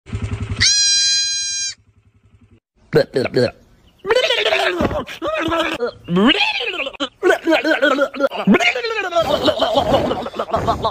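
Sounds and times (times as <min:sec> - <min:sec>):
goat kid bleating: 0:00.6 - 0:01.8.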